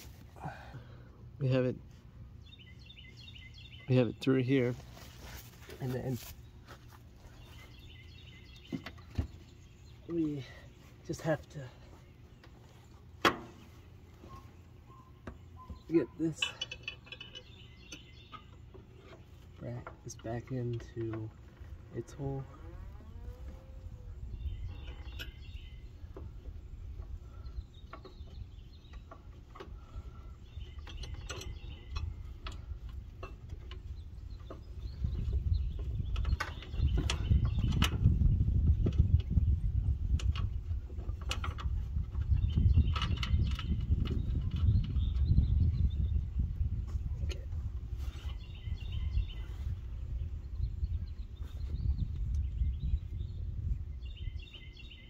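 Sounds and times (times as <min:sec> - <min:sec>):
light metallic clicks and knocks: 0:15.0 - 0:21.7.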